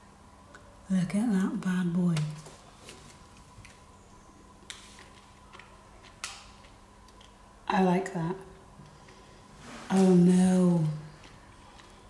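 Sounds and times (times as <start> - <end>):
faint steady hum: 0.0 - 12.0
cookie crunching: 10.8 - 12.0.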